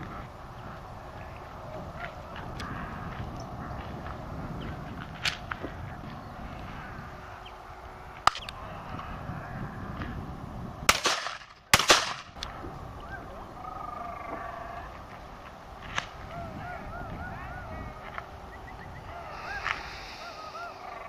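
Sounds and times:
shotgun shots: 10.9s - 12.4s.

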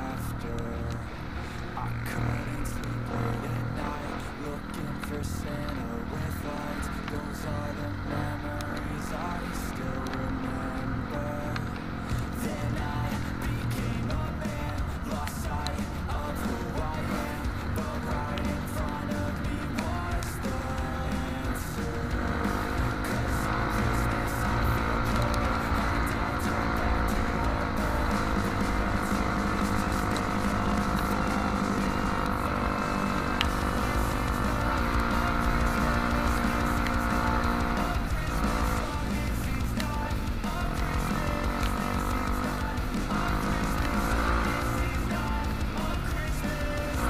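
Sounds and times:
motorcycle engine revving: 0.0s - 47.0s
music playing: 0.0s - 47.0s.

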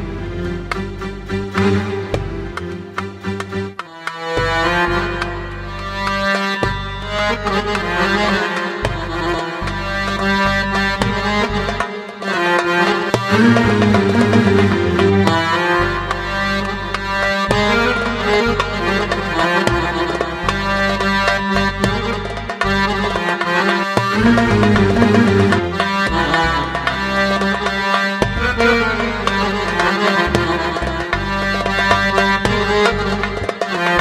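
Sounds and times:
bass line: 0.0s - 34.0s
electronic keyboard melody: 0.0s - 34.0s
drum rhythm: 0.6s - 34.0s.

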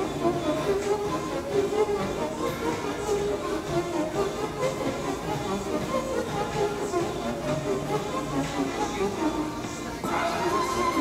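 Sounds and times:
music with wavering melody: 0.0s - 11.0s.

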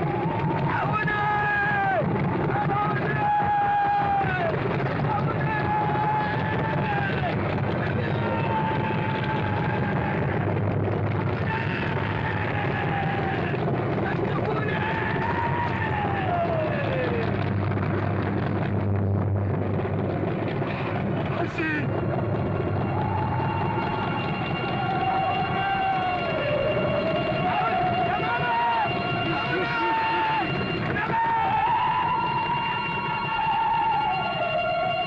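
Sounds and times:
aircraft engines droning: 0.0s - 35.0s.

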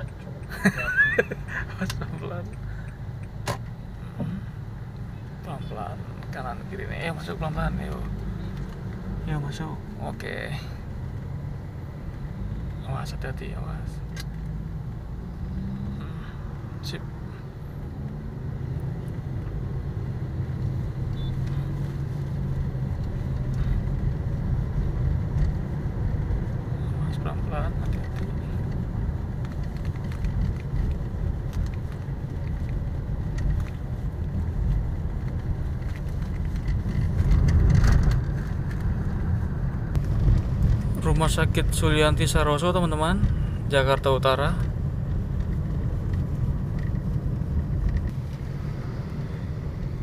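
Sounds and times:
car engine and road rumble: 0.0s - 50.0s.

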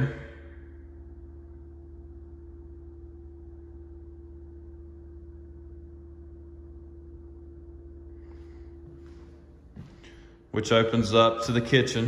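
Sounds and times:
constant higher tone: 0.0s - 12.0s
steady low hum: 0.0s - 12.0s.

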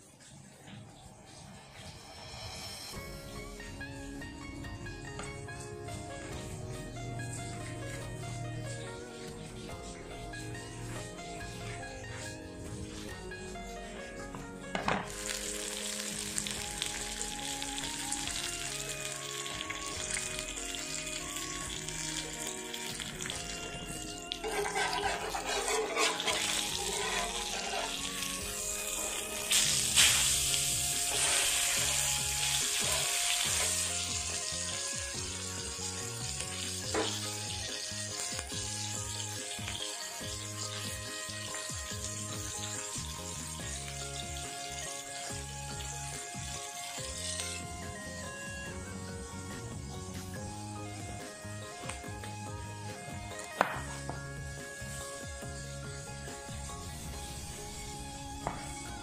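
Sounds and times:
fish sizzling in hot oil: 0.0s - 6.5s, 15.0s - 59.0s
background music: 0.0s - 59.0s.

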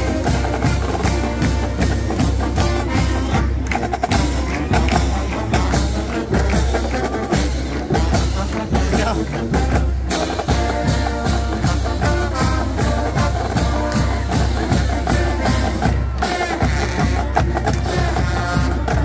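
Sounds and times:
brass lines: 0.0s - 19.0s
steady drum beat: 0.0s - 19.0s.

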